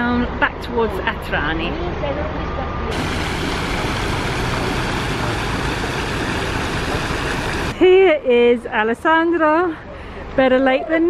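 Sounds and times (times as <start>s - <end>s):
fountain water splashing: 2.9s - 7.8s.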